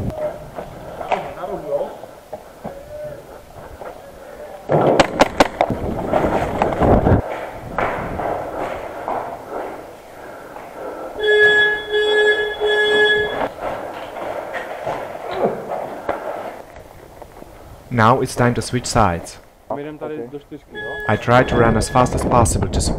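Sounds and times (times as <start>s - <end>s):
rustling and footsteps: 0.0s - 19.6s
steady electronic tone: 11.2s - 13.5s, 20.7s - 22.3s.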